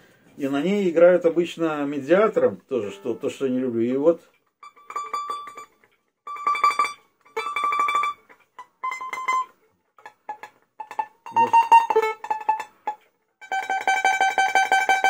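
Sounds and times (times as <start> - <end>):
domra tremolo plucking: 1.4 - 15.0.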